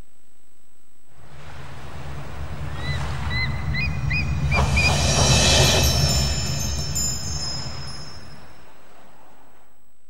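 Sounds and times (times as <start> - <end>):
ocean waves washing: 1.1 - 9.7
seagull cries: 2.7 - 4.9.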